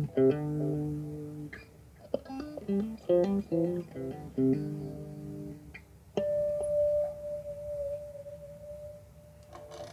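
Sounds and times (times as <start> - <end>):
electric guitar notes ringing: 0.0 - 9.9.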